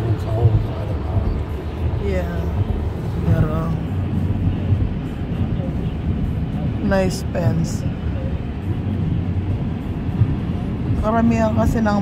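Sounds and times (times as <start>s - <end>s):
car road and engine rumble: 0.0s - 12.0s.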